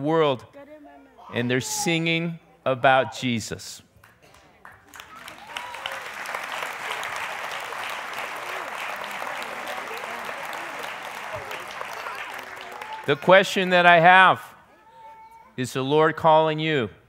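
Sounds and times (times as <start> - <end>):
congregation applauding: 4.0 - 14.1.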